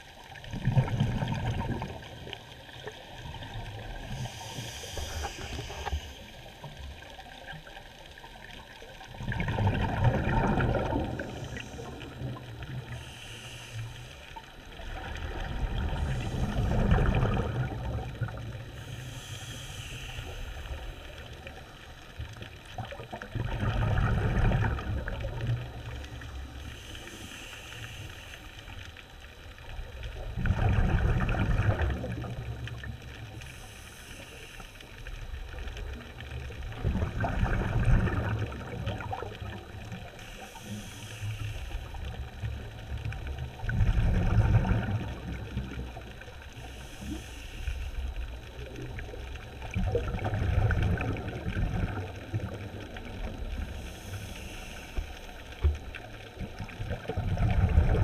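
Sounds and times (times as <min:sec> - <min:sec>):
exhaled bubbles burbling: 0:00.0 - 0:05.8, 0:08.4 - 0:13.0, 0:14.7 - 0:18.8, 0:22.6 - 0:26.0, 0:29.7 - 0:33.2, 0:35.4 - 0:40.0, 0:42.1 - 0:46.4, 0:48.3 - 0:53.8, 0:55.7 - 0:58.0
regulator hiss on inhale: 0:03.8 - 0:07.1, 0:11.1 - 0:14.8, 0:15.8 - 0:17.2, 0:18.3 - 0:22.1, 0:25.8 - 0:29.7, 0:32.7 - 0:35.7, 0:39.8 - 0:42.7, 0:46.2 - 0:48.7, 0:52.1 - 0:56.4.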